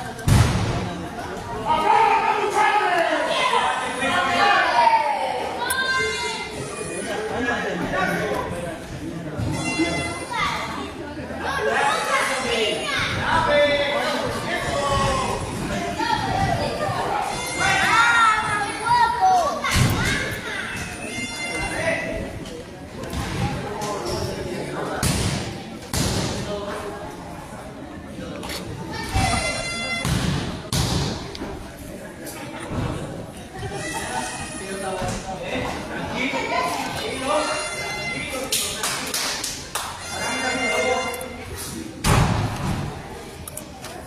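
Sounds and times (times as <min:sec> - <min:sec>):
crowd voices calling out: 0:00.0 - 0:25.9, 0:28.4 - 0:38.8, 0:39.7 - 0:44.0.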